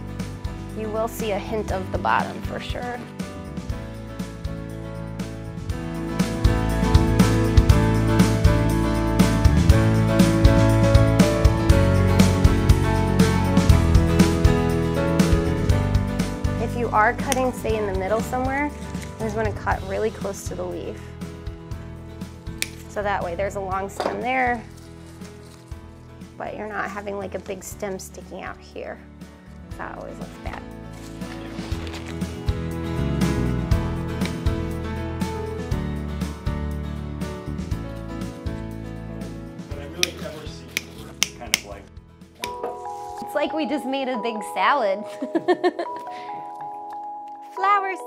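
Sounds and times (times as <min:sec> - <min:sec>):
soft background music: 0:00.0 - 0:48.0
hand cutters snipping stem: 0:22.6 - 0:22.9, 0:40.0 - 0:41.8.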